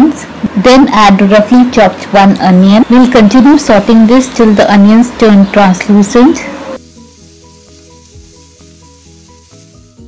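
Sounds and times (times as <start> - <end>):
onions sizzling in a pan: 3.2 - 10.0
soft background melody: 6.6 - 10.0.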